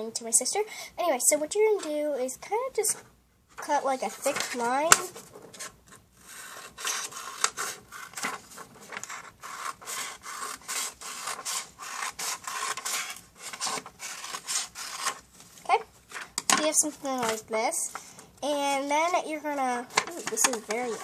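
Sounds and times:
paper rustling: 0:03.6 - 0:16.3, 0:17.0 - 0:18.1, 0:19.9 - 0:21.0
scissors snipping paper: 0:06.4 - 0:15.2.

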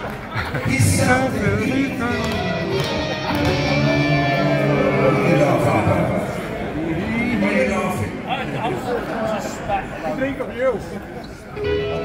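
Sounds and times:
man singing through pa: 0:00.7 - 0:02.8
live rock band playing: 0:00.7 - 0:06.5, 0:11.6 - 0:12.0.

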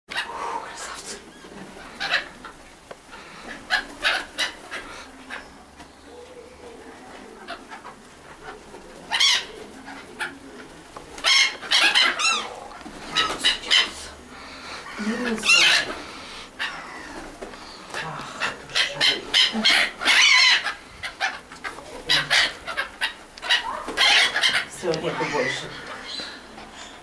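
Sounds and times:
gulls calling: 0:00.1 - 0:27.0.

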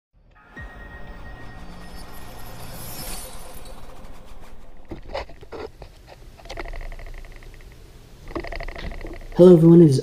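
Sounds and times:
bright shimmering sweep: 0:00.3 - 0:05.8
low rumble: 0:00.3 - 0:07.5.

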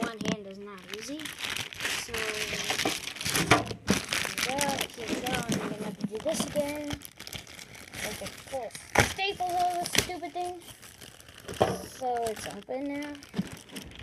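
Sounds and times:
packaging crinkling and crackling: 0:00.0 - 0:14.0
person making wordless sounds: 0:04.3 - 0:07.0, 0:08.0 - 0:10.7, 0:11.7 - 0:13.2.

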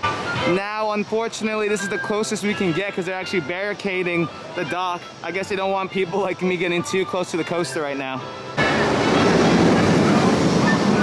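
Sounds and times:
roller coaster train rumbling on track: 0:08.6 - 0:11.0.

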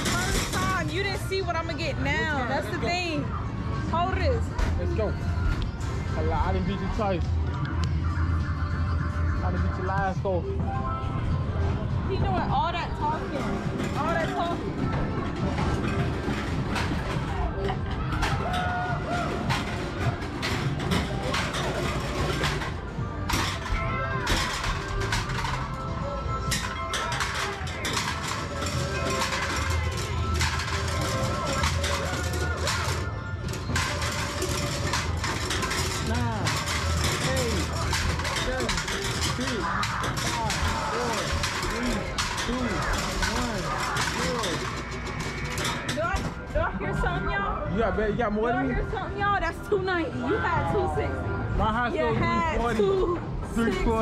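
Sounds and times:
hubbub of voices: 0:00.0 - 0:54.0.

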